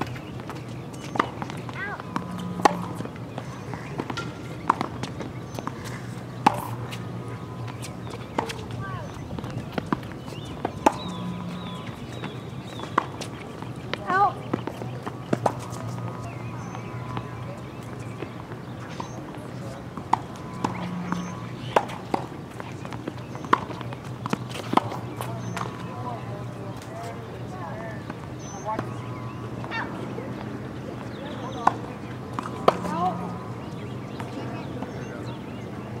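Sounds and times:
tennis ball struck by rackets: 0.0 - 8.8, 9.7 - 17.5, 18.9 - 26.0, 32.4 - 33.4
tennis ball bouncing: 0.0 - 26.9, 28.0 - 35.1.

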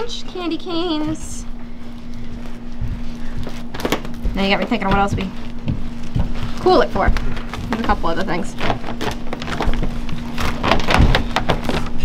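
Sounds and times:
brittle candy crackling and scraping: 3.5 - 12.0.

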